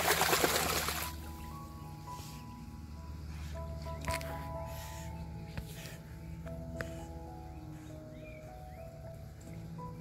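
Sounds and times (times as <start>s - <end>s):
dog splashing in pool: 0.0s - 1.3s
background music with held notes: 0.0s - 10.0s.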